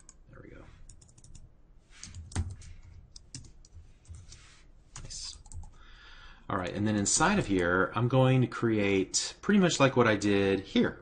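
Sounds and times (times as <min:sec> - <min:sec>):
computer keyboard typing: 0:00.0 - 0:00.2, 0:00.8 - 0:04.4, 0:05.0 - 0:05.8.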